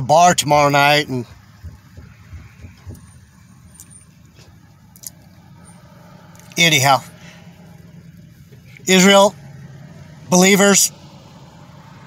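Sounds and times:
low rumble inside vehicle cabin: 0.0s - 12.0s
faint soft thumps: 1.3s - 4.7s.

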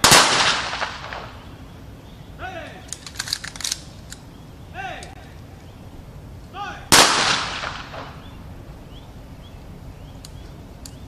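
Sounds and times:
rifle volley with echo: 0.0s - 1.4s, 6.9s - 8.3s.

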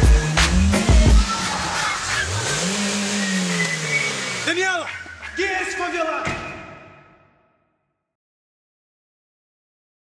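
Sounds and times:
car engine revving: 0.0s - 6.1s.

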